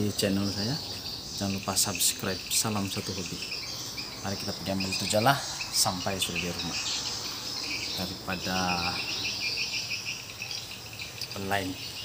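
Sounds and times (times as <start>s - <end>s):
high-pitched insect drone: 0.0s - 12.0s
insects chirping: 0.0s - 12.0s.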